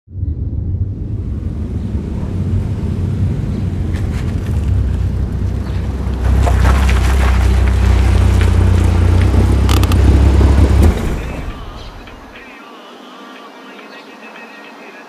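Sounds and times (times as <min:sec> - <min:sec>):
car engine rumbling: 0:00.1 - 0:12.4.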